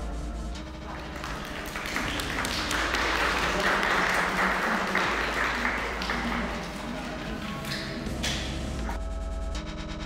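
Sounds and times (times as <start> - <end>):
audience applauding: 0.8 - 8.9.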